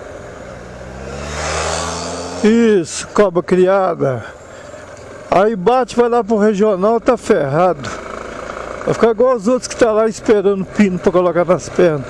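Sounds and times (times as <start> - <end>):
motorcycle engine pulling away: 0.0 - 2.8, 7.3 - 11.0.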